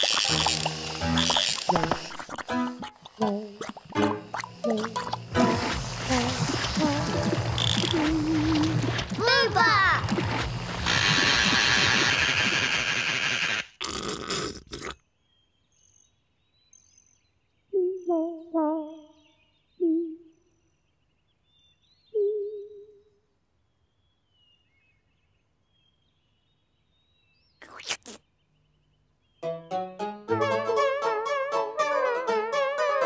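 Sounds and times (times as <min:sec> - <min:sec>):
voices humming: 0:00.0 - 0:11.6
loud steady hiss: 0:00.0 - 0:13.8
faint high chirps: 0:22.0 - 0:23.2.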